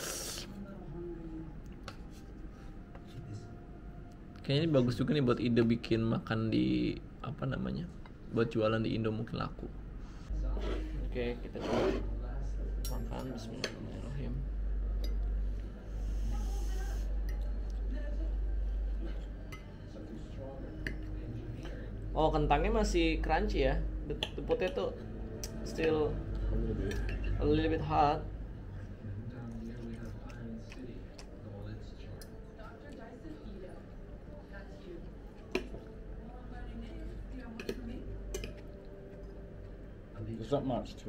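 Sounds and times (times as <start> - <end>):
cutlery clicking on plate: 37.6 - 38.7.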